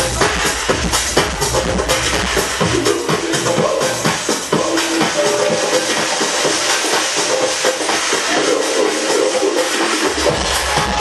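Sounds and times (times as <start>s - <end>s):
kick drum and bass: 0.0s - 8.7s, 10.0s - 11.0s
house music over sound system: 0.0s - 11.0s.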